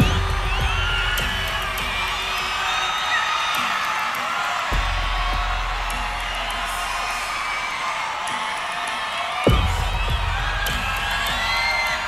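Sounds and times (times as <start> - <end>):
concert music: 0.0 - 12.0
crowd screaming and cheering: 0.0 - 12.0.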